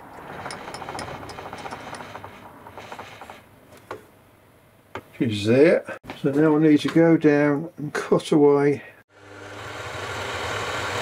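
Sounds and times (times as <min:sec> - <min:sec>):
milling machine table rattling whir: 0:00.1 - 0:03.4.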